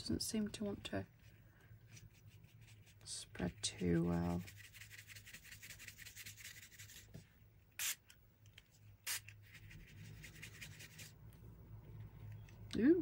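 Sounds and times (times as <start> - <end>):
paintbrush scrubbing on fabric: 1.9 - 7.1, 9.5 - 11.1.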